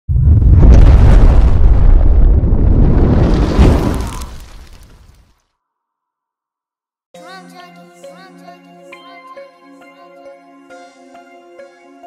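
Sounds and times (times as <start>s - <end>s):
deep low rumble: 0.1s - 3.6s
explosion and fire: 0.1s - 5.4s.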